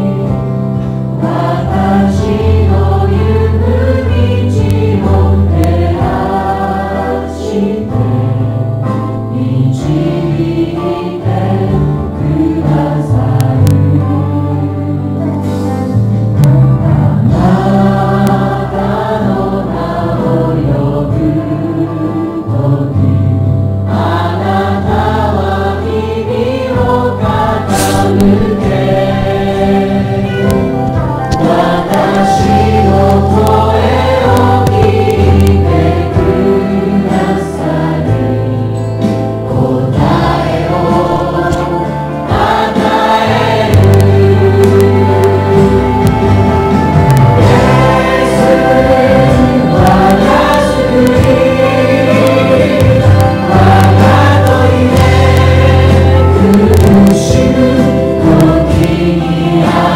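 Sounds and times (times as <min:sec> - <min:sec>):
group singing praise song: 0:00.0 - 0:15.8, 0:17.0 - 0:23.3, 0:23.9 - 0:59.9
band accompaniment: 0:00.0 - 0:19.2, 0:24.0 - 0:59.9.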